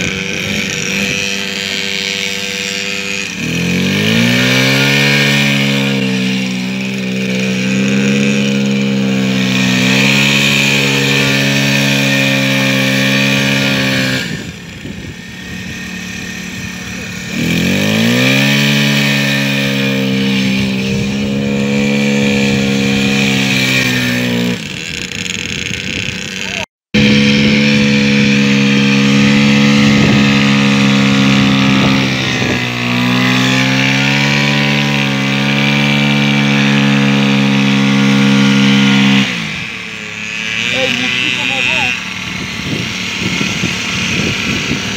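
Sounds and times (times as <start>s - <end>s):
scooter engine revving high: 0.0s - 44.9s.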